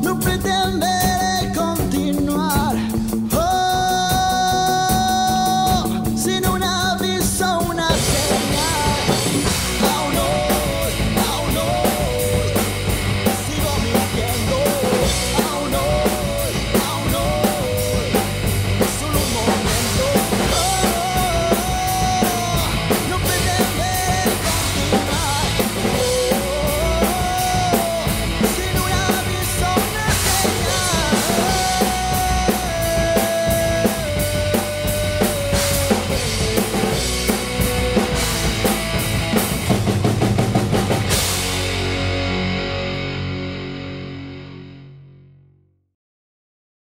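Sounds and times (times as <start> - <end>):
drum kit playing rock beat: 0.0 - 44.4
rock song with lead guitar: 0.0 - 45.0.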